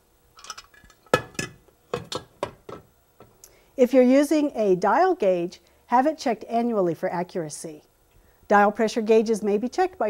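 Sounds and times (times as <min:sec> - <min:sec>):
metal lid clinking on grate: 0:00.4 - 0:02.3.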